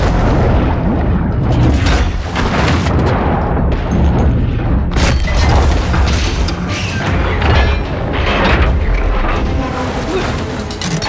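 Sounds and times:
deep booming underwater rumble: 0:00.0 - 0:06.5
dramatic score music: 0:00.0 - 0:11.0.

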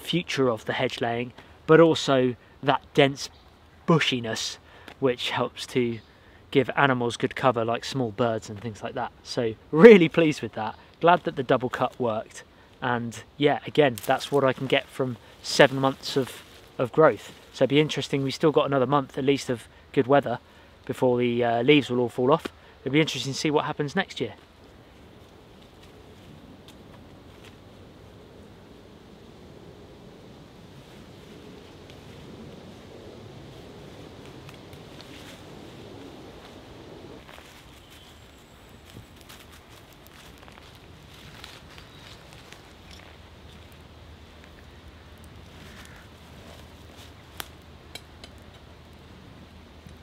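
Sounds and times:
faint outdoor background: 0:00.0 - 0:50.0.

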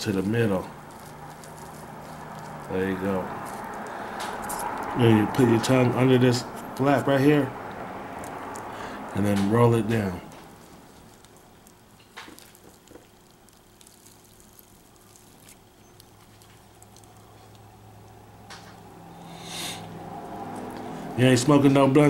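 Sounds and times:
soft crinkles of rolling wrap: 0:00.0 - 0:04.9, 0:09.9 - 0:18.2.

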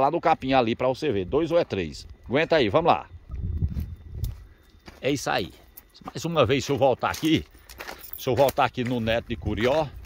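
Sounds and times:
footsteps on stony ground: 0:00.2 - 0:10.0.

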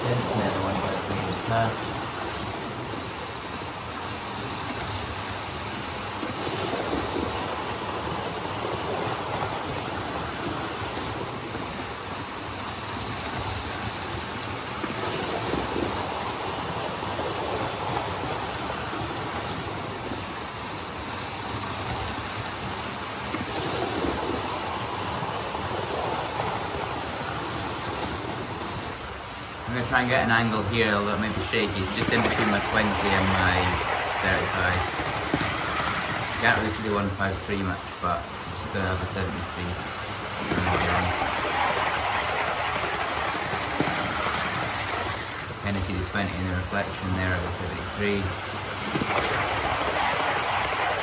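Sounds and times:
model trains whirring on track: 0:00.0 - 0:51.0.

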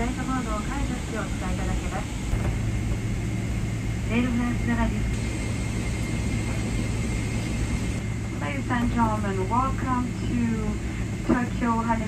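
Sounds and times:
airliner cabin rumble: 0:00.0 - 0:12.0
thin steady whine: 0:00.0 - 0:12.0.

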